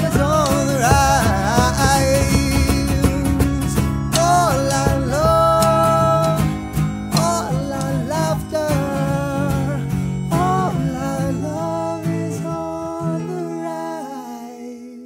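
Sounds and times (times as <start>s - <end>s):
hand drum: 0.0s - 11.2s
melodica long held notes: 0.0s - 14.4s
strummed acoustic guitar: 0.0s - 14.8s.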